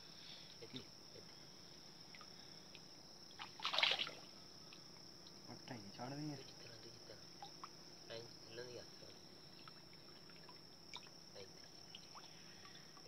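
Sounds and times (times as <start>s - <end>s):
high-pitched insect drone: 0.0s - 13.0s
water splash: 3.4s - 4.3s.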